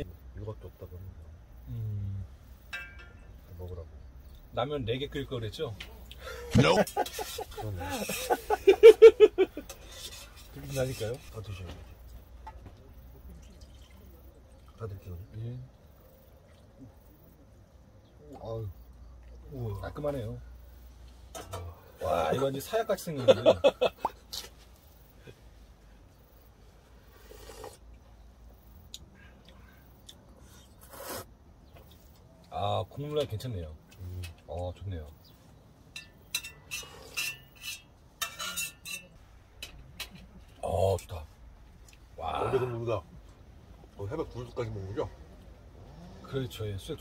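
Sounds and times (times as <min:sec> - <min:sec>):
man laughing out loud: 0:06.5 - 0:09.7, 0:23.2 - 0:24.0
slurping noodles: 0:27.1 - 0:27.8, 0:30.6 - 0:31.3.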